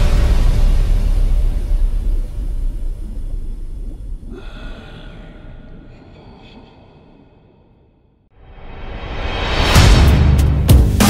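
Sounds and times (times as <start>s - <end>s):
deep bass hit rumble: 0.0s - 4.3s.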